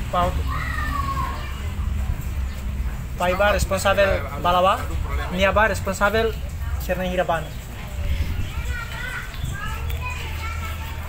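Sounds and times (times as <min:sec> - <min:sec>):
children's voices: 0:00.0 - 0:02.5, 0:07.5 - 0:11.0
people talking: 0:03.2 - 0:11.0.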